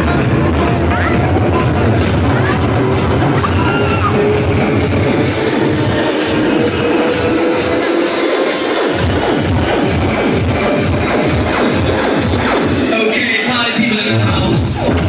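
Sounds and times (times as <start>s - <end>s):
electronic dance music: 0.0s - 15.0s.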